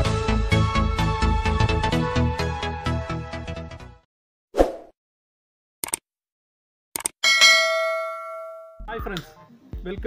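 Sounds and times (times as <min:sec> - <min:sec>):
notification bell ding: 0:07.2 - 0:08.9.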